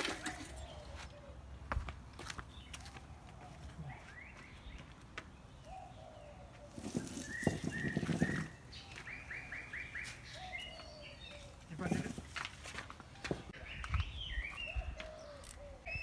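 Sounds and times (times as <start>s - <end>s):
small birds chirping: 0.3s - 16.0s.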